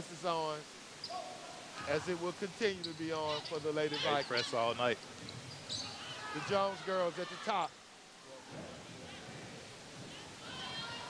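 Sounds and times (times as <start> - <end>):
murmur of crowd and court noise: 0.0 - 11.0.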